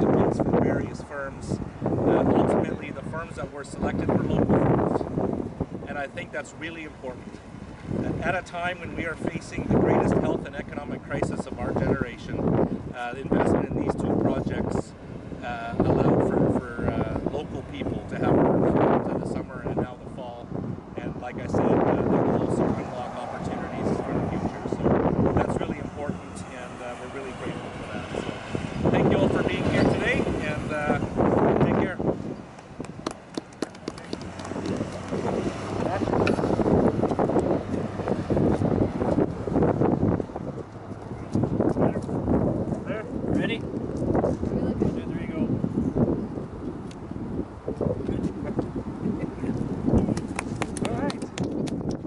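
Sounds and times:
people talking: 0.0 - 5.0, 5.9 - 7.3, 8.0 - 12.4, 13.0 - 20.4, 21.0 - 28.2, 28.9 - 32.0, 33.8 - 34.5, 41.2 - 42.1, 42.8 - 43.6, 44.4 - 45.5, 48.0 - 50.2, 50.8 - 51.3
pickup truck towing trailer passing: 21.7 - 44.3
small group clapping: 32.6 - 35.4, 49.9 - 52.0.

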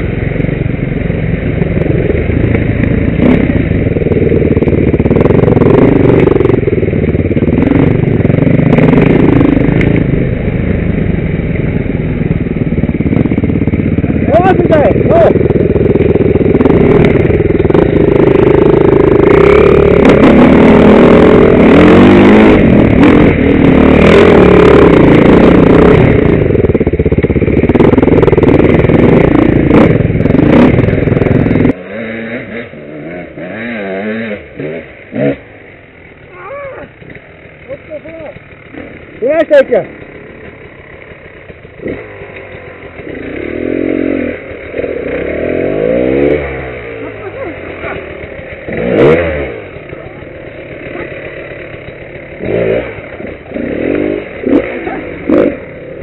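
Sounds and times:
off-road motorcycle engine revving: 0.0 - 56.0
wind: 0.0 - 56.0
rattle: 35.0 - 45.7, 46.3 - 56.0.

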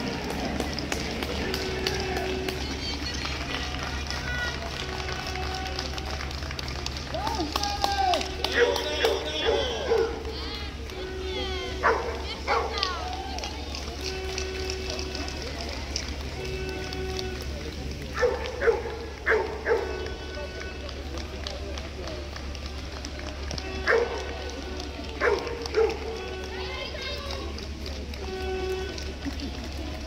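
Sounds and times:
steady background noise: 0.0 - 30.0
dog barking: 9.4 - 10.2, 11.8 - 12.8, 18.2 - 20.0, 23.9 - 24.2, 25.2 - 26.0.

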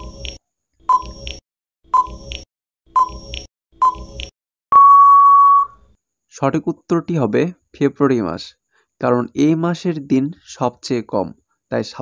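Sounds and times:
steady beep: 4.7 - 5.8.

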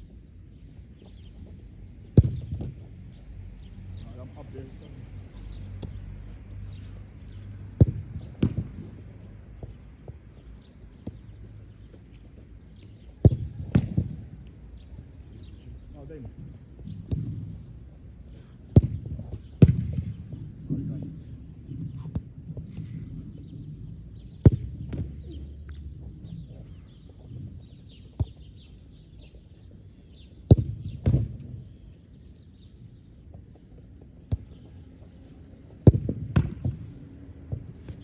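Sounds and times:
football thuds on turf: 2.1 - 2.9, 7.7 - 9.0, 13.2 - 14.2, 16.9 - 17.6, 18.7 - 21.0, 24.4 - 25.3, 30.5 - 31.6, 35.8 - 36.9.

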